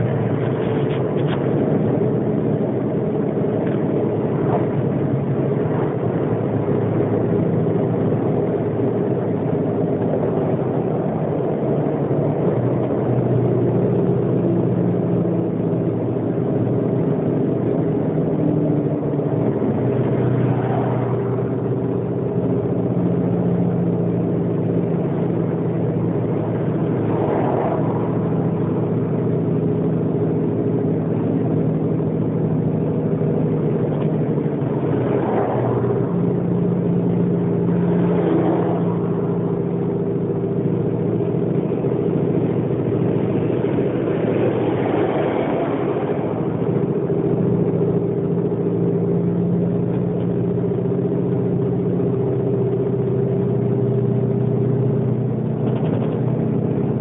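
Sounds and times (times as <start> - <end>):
truck engine drone: 0.0 - 57.0
swells of higher noise: 32.2 - 49.4.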